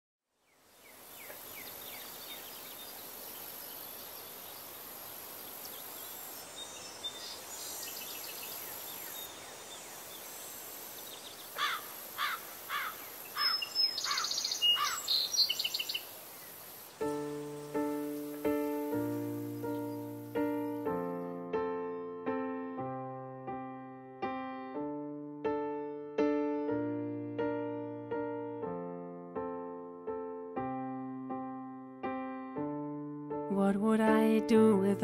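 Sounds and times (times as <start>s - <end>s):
steady hiss: 0.5s - 21.2s
songbirds whistling and trilling: 13.4s - 20.9s
piano notes: 17.0s - 35.0s.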